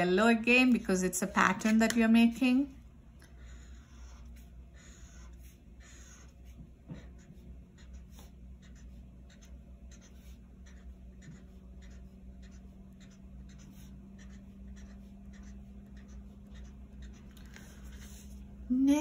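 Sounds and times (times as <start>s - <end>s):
steady low hum: 0.0s - 19.0s
felt-tip marker scratching on paper: 3.4s - 18.4s.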